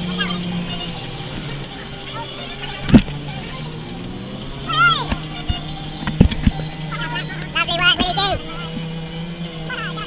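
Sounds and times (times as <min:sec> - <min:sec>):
auto rickshaw engine running: 0:00.0 - 0:10.0.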